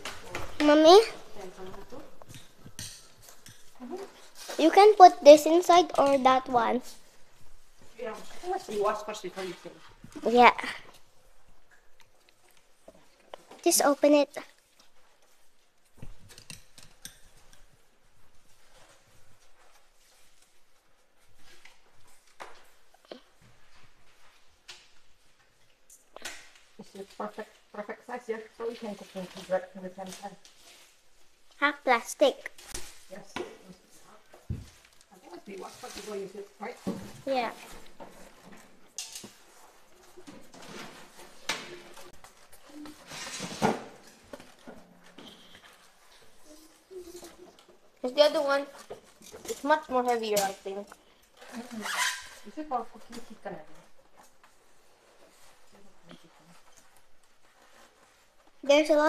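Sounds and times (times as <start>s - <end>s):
plastic wrap rustling: 26.8s - 31.5s, 32.2s - 58.9s.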